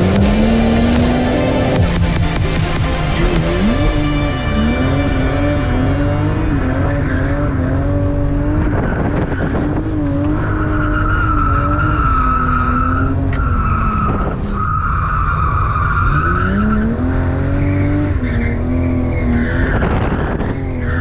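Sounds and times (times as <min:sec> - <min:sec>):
car engine revving high: 0:00.0 - 0:21.0.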